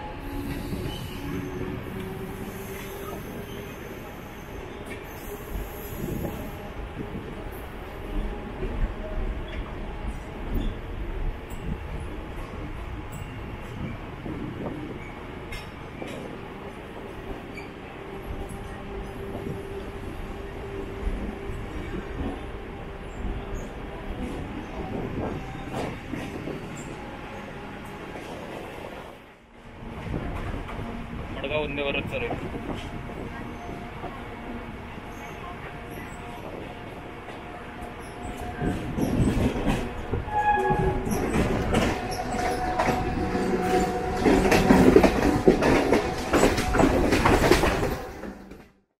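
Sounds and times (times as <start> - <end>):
train wheels rumbling over rails: 0.0 - 48.8
train wheels clattering over rails: 37.2 - 48.7.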